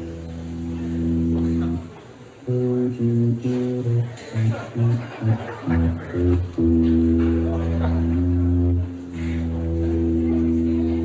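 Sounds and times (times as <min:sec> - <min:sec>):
low organ-like synthesizer chord: 0:00.0 - 0:01.9.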